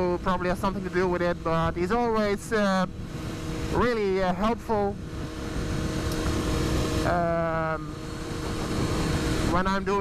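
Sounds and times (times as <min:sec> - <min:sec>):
motorcycle engine drone: 0:00.0 - 0:10.0
wind rushing over microphone: 0:00.0 - 0:10.0.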